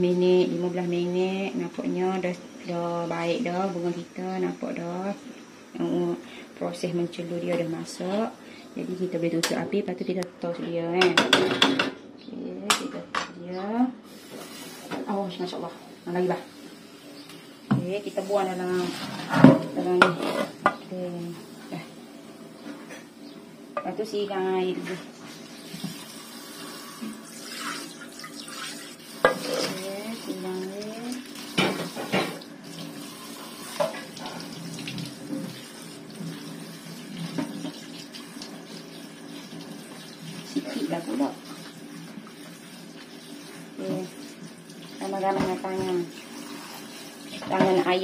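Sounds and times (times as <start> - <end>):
tap water running into sink: 25.2 - 48.0.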